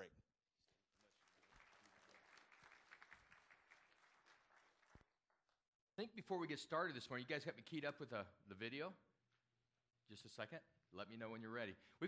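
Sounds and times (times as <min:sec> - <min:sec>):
congregation applauding: 0:00.9 - 0:05.1.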